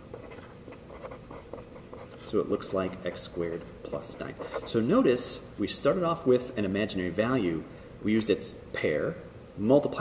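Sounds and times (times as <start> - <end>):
pen writing on paper: 0.1 - 2.2.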